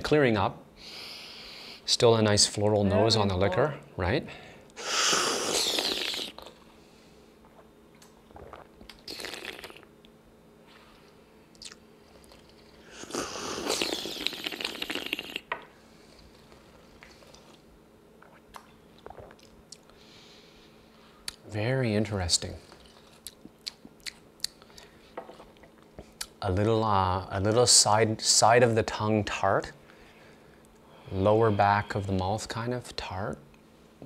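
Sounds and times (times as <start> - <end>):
tea slurping: 5.2 - 6.6, 7.4 - 9.9, 12.2 - 15.4, 18.2 - 19.5.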